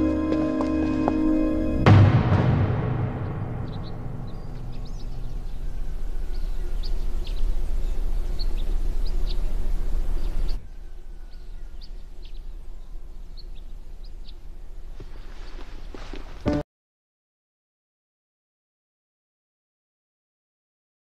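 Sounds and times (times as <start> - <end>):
low outdoor rumble: 0.0 - 16.5
small birds chirping: 3.6 - 16.6.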